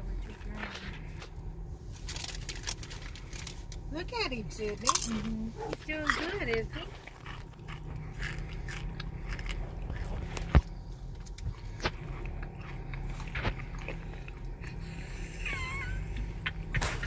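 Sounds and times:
car engine hum: 0.0s - 17.0s.

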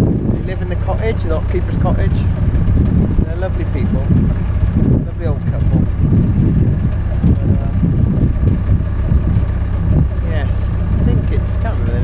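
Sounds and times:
boat diesel engine rumbling: 0.0s - 12.0s.

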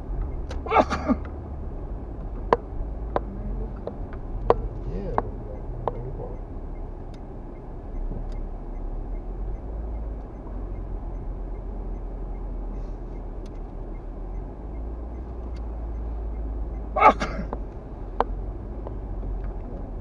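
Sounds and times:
car engine and tyre rumble: 0.0s - 20.0s
faint clicks: 13.1s - 15.7s.

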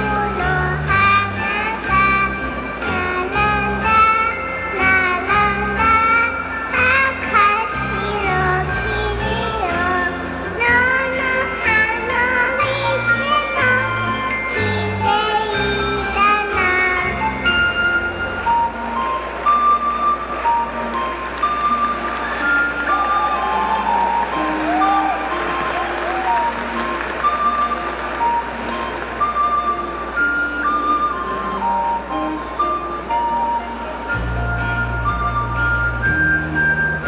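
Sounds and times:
instrumental children's song over pa: 0.0s - 37.0s.

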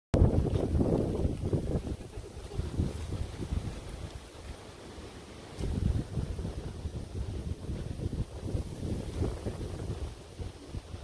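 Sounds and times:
wind buffeting microphone: 0.2s - 11.0s.

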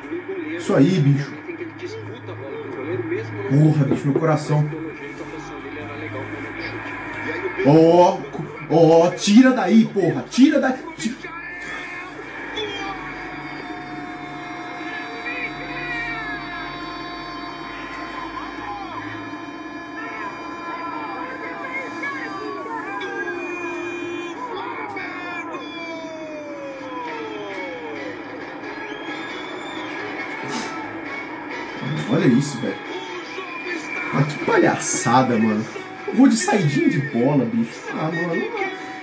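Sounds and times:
steady held tones: 0.0s - 38.5s
faint sports commentary: 0.0s - 39.0s.

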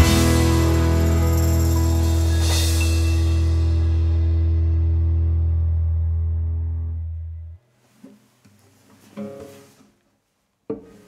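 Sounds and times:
final chord of bass and guitars: 0.0s - 7.4s.

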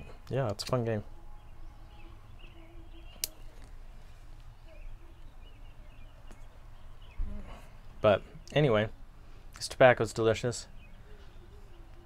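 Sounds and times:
faint bird chirps: 1.0s - 9.0s, 10.6s - 12.0s
lighter click: 3.2s - 3.4s.

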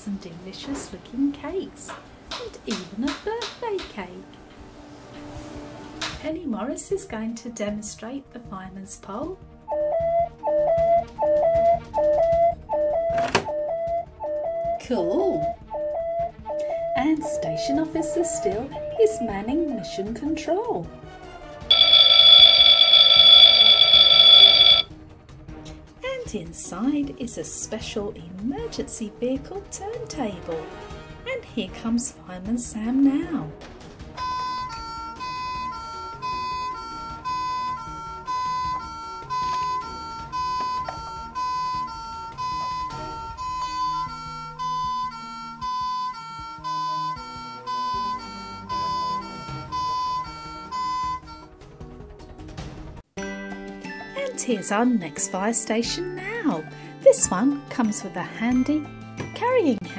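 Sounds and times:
toy electronic alarm ringing: 21.7s - 24.9s, 34.2s - 51.4s.

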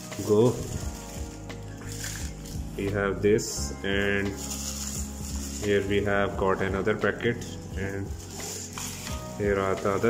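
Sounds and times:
plastic packaging crinkling: 0.0s - 2.9s, 3.8s - 6.1s, 7.4s - 10.0s.

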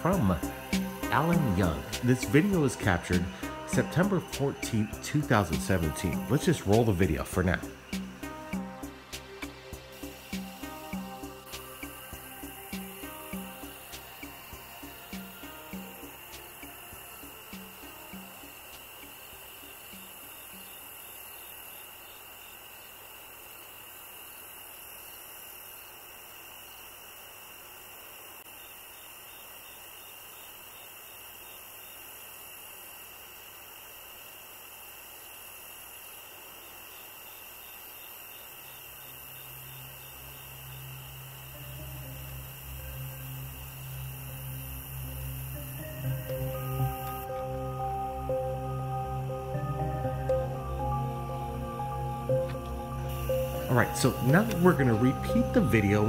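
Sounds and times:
low ambient music drone: 0.0s - 19.1s, 39.5s - 56.0s
faint steady hiss: 0.0s - 56.0s.

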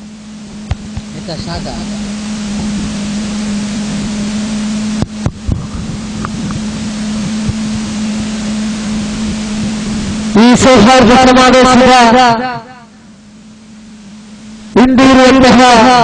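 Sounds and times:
steady rushing noise: 0.0s - 13.2s
constant low hum: 0.0s - 16.0s.

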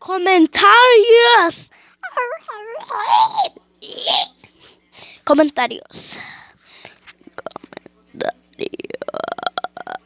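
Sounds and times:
child making creaky vocal noise: 2.0s - 4.4s, 8.8s - 10.0s.

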